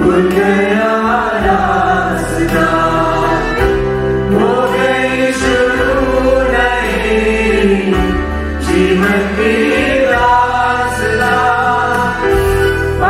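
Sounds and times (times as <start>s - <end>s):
choir singing a hymn: 0.0s - 13.0s
low accompaniment: 0.0s - 13.0s.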